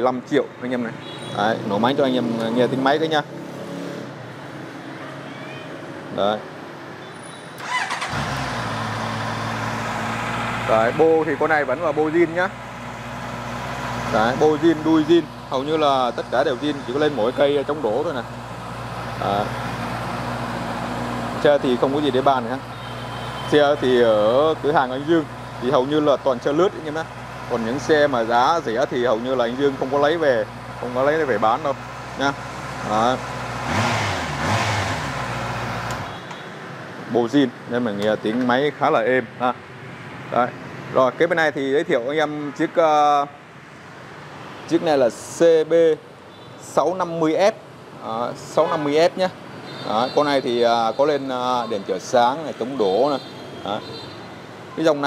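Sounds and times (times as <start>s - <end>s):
engine starter cranking: 7.6s - 9.2s
motorcycle engine idling: 7.6s - 21.1s, 22.0s - 28.4s.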